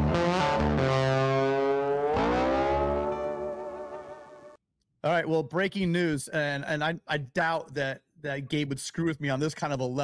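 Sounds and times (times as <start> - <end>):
distorted electric guitar chord: 0.0 - 4.5.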